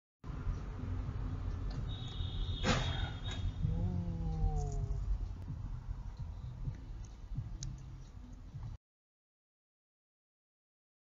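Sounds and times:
car rumble: 0:00.2 - 0:08.8.

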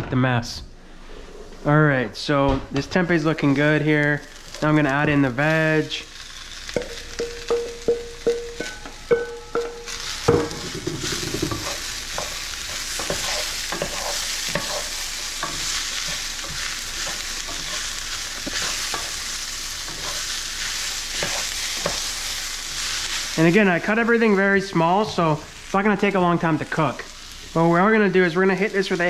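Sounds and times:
vegetables sizzling: 0:01.5 - 0:29.0
vegetables dropping into skillet: 0:06.6 - 0:12.4
utensil stirring and scraping: 0:10.0 - 0:19.2.

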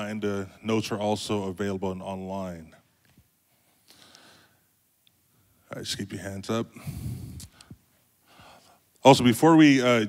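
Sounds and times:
man talking: 0:00.0 - 0:02.8, 0:05.7 - 0:06.8, 0:09.0 - 0:10.0
man breathing into microphone: 0:06.7 - 0:08.8.

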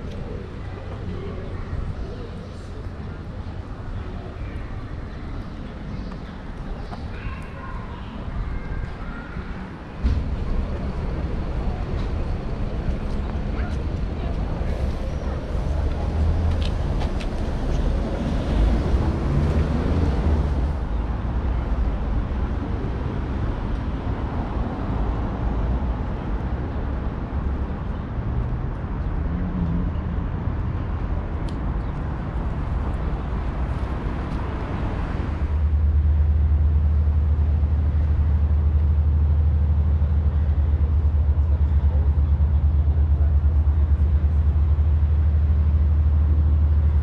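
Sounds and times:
faint voices of passers-by: 0:00.0 - 0:47.0
traffic rumble: 0:00.0 - 0:47.0.

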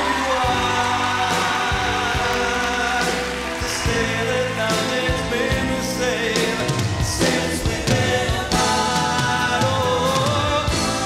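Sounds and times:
live pop band playing: 0:00.0 - 0:11.0.

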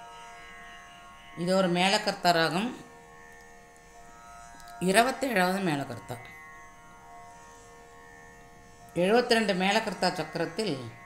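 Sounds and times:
faint steady drone: 0:00.0 - 0:11.0.

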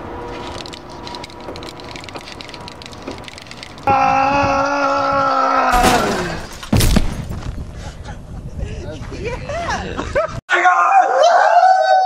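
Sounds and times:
person howling: 0:03.8 - 0:06.4.

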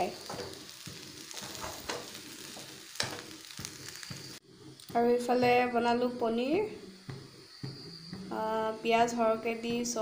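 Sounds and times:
rice sizzling in a wok: 0:00.0 - 0:10.0.

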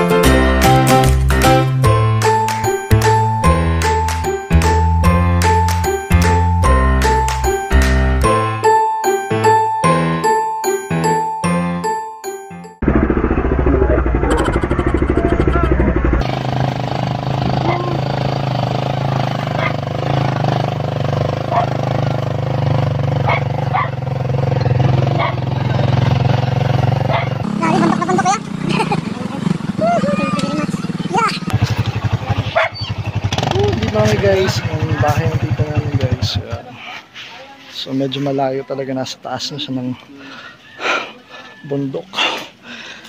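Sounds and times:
motorcycle engine running: 0:12.8 - 0:36.7
voices talking: 0:17.6 - 0:18.1, 0:27.1 - 0:42.4.

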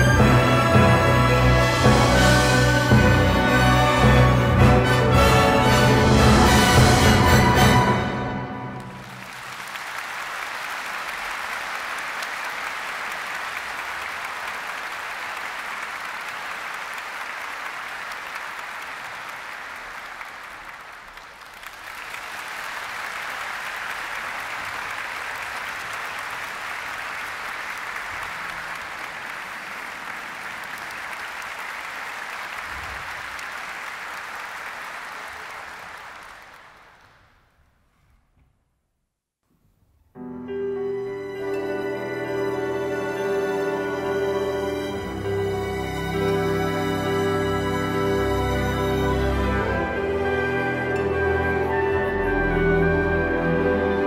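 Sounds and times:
audience applauding: 0:00.0 - 0:37.5.

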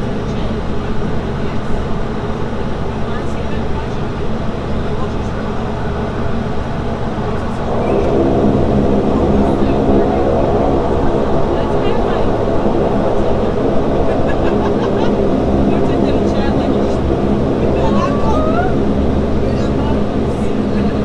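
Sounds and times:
turboprop engine droning: 0:00.0 - 0:21.0.

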